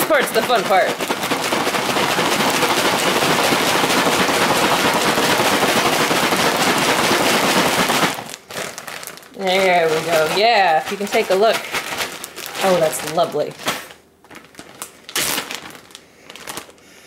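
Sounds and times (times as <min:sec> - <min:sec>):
cereal rattling in shaken plastic bag: 0:00.0 - 0:16.8.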